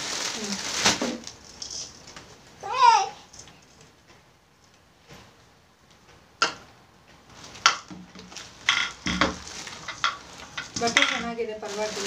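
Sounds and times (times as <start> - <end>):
fabric rustling: 7.3 - 12.0.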